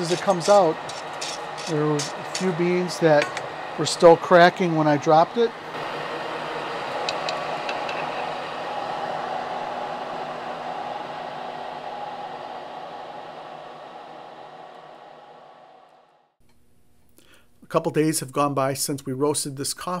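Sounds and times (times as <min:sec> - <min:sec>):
cooling fan blowing: 0:00.0 - 0:16.3.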